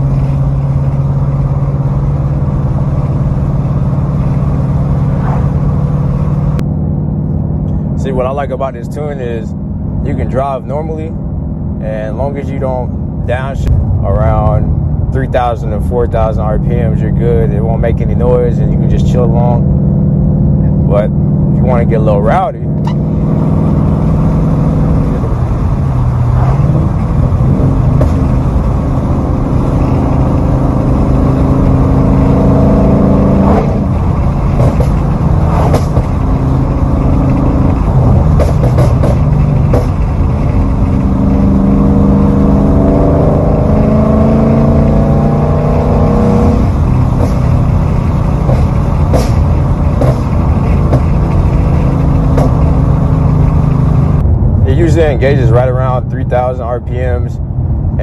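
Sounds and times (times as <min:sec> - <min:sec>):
exhaust crackles and pops: 0:00.0 - 0:08.6, 0:13.2 - 0:57.4
car engine revving: 0:00.0 - 0:58.0.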